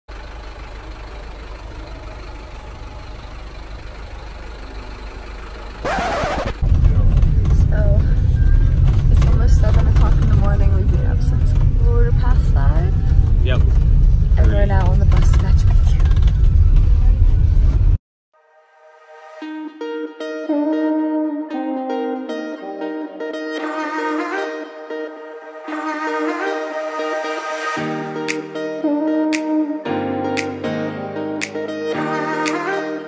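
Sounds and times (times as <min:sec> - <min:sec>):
bus engine and road drone: 0:00.1 - 0:18.0
woman talking: 0:07.6 - 0:08.2, 0:09.1 - 0:13.0, 0:14.4 - 0:16.1.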